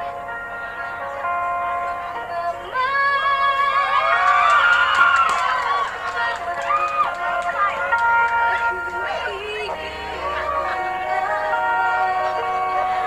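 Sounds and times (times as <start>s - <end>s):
band playing sustained chords: 0.0s - 4.4s, 5.2s - 13.0s
crowd screaming and cheering: 3.2s - 13.0s.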